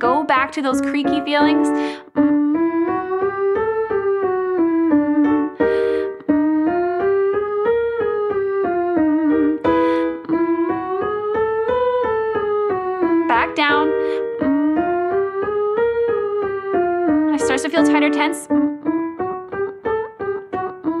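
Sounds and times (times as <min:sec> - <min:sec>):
person breathing in: 0:01.7 - 0:02.1, 0:05.6 - 0:06.3, 0:09.7 - 0:10.2, 0:14.0 - 0:14.4
digital piano playing quick notes: 0:17.0 - 0:21.0.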